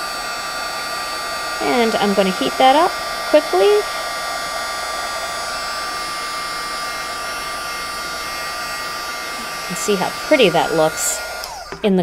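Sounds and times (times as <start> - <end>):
heat tool fan whining: 0.0 - 12.0.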